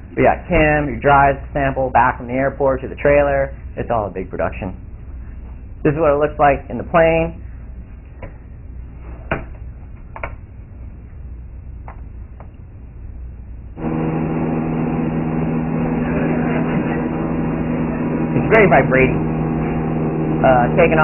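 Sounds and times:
room hum: 0:00.0 - 0:21.0
light aircraft engine drone: 0:09.9 - 0:21.0.

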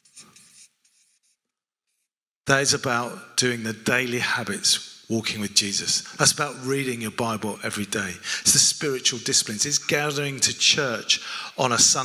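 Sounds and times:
marker pen writing on paper: 0:00.0 - 0:01.4.

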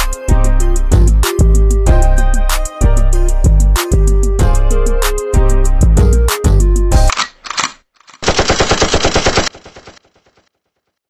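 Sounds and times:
automatic gunfire: 0:07.2 - 0:10.5.

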